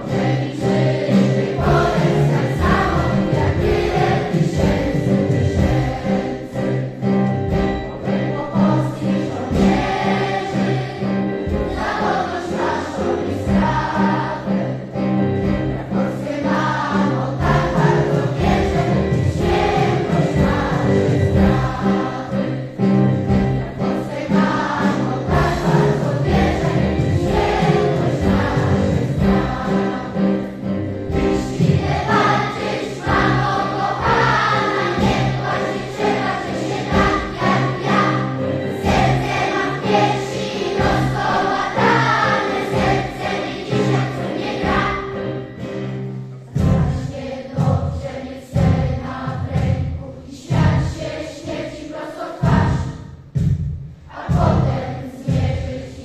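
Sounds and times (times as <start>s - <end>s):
mixed choir singing: 0.0s - 53.2s, 54.0s - 56.0s
keyboard accompaniment: 0.0s - 56.0s.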